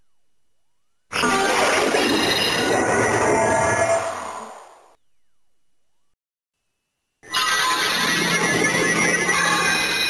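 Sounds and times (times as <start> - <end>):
toy electronic sound effect: 7.2 - 10.0.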